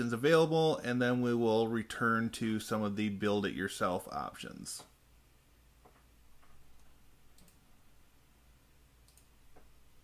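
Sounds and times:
faint sharp clicks: 0:05.8 - 0:07.6, 0:09.0 - 0:09.7.

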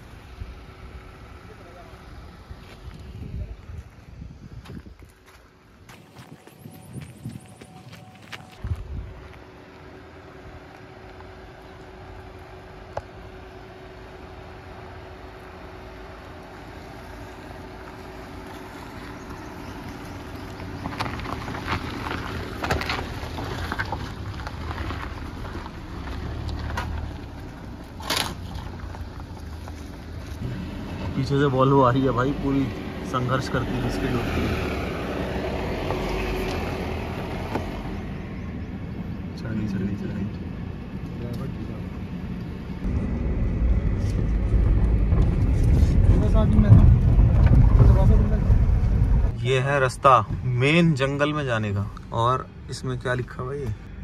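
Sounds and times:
car engine hum: 0:00.0 - 0:54.0
tyres crunching over gravel: 0:01.3 - 0:13.6, 0:15.4 - 0:37.9.

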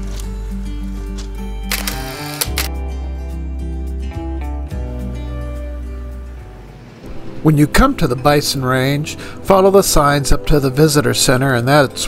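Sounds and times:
background music with bass line: 0:00.0 - 0:12.0
camera shutter click: 0:01.7 - 0:02.7.

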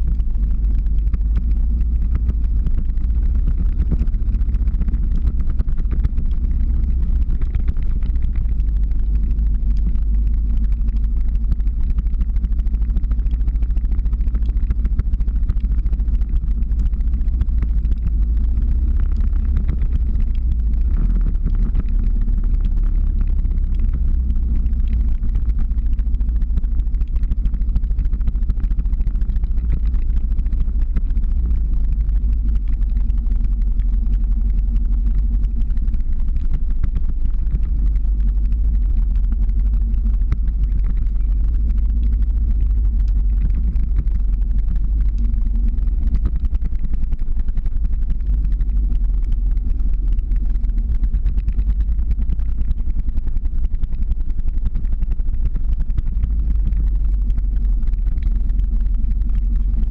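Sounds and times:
vehicle engine running at low speed: 0:00.0 - 0:59.9.

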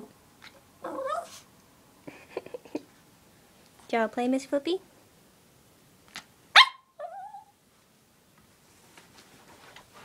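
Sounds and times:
dog yip with falling pitch: 0:06.5 - 0:07.5
small dog barking: 0:06.5 - 0:07.5.

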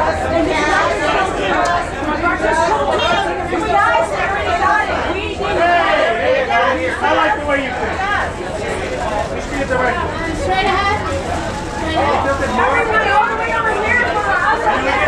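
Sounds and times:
crowded chatter of voices: 0:00.0 - 0:15.0.

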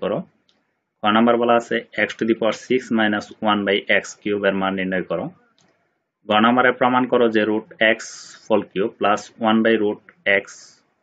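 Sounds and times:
man speaking: 0:00.0 - 0:00.4, 0:01.0 - 0:05.6, 0:06.2 - 0:10.9.

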